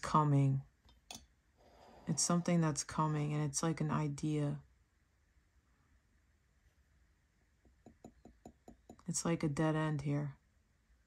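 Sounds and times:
fingernails tapping on porcelain cup: 7.7 - 9.0.

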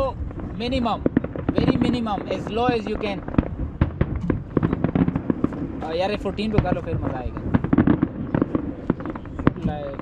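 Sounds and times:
fireworks popping and crackling: 0.0 - 10.0.

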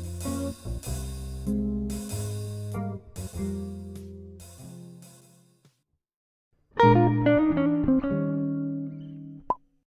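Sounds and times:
guitar chord ringing: 6.8 - 9.4.

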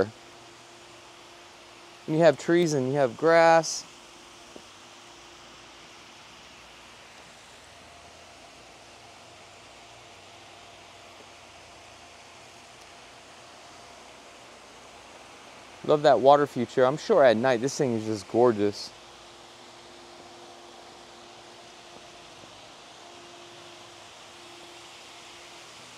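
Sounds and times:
faint steady hum: 0.0 - 25.9.

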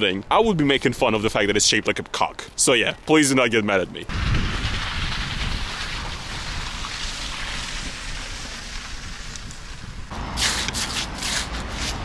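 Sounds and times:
wind buffeting microphone: 3.8 - 12.0
footsteps crunching on slushy snow: 10.1 - 12.0.

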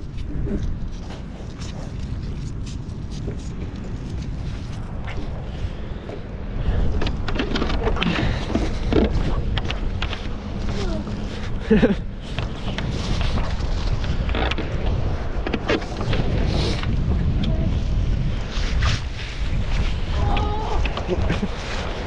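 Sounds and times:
footsteps through brush: 0.0 - 5.5
wind rumbling on microphone: 0.0 - 22.0.

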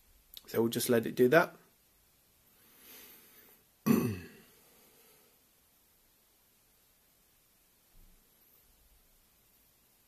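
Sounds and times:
faint breath intake: 2.5 - 3.7
man clearing his throat: 3.8 - 4.5.

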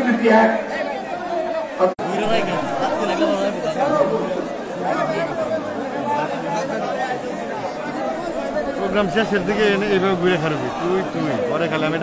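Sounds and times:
men's voices chattering: 0.0 - 12.0.

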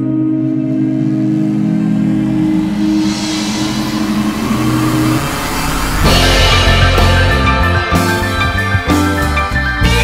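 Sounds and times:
distorted electric guitar chord: 0.0 - 8.8
wash of noise: 1.0 - 7.2.

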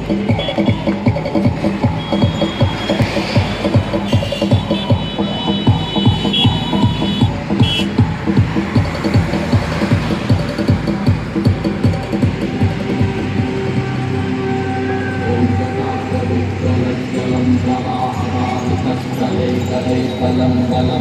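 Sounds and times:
music with heavy bass beat: 0.0 - 21.0.

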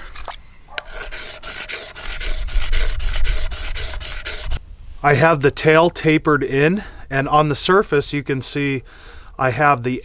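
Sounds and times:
stone grinding on wet sandstone: 0.0 - 4.6.

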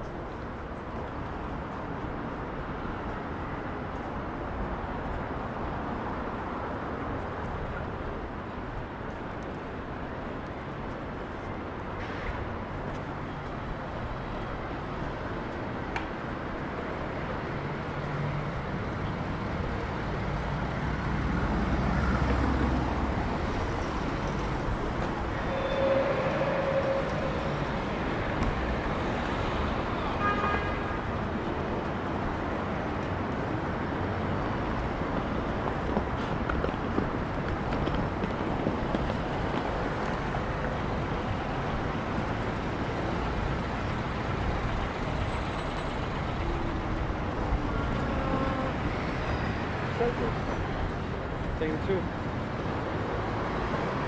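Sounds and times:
city street traffic: 0.0 - 54.0.

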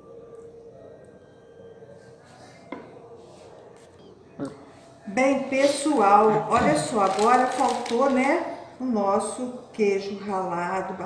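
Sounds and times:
faint steady hum: 0.0 - 7.0.

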